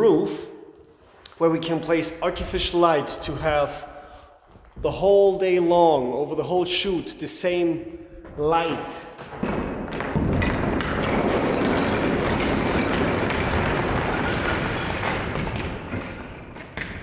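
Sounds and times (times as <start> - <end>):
plastic bricks pouring and clattering: 9.8 - 17.0.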